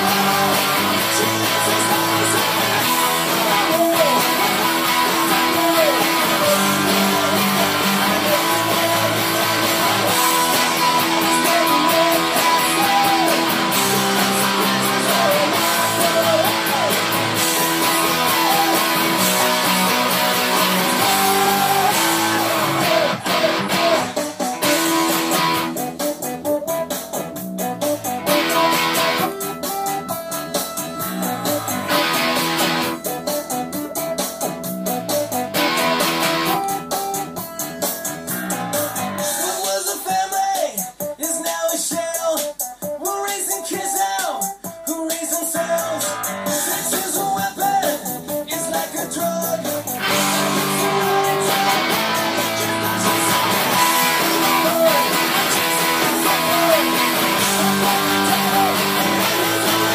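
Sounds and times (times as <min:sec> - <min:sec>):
electric guitar chord riffs: 0:00.0 - 0:25.8, 0:35.5 - 0:36.8, 0:50.0 - 0:59.9
backing music: 0:00.0 - 0:59.9.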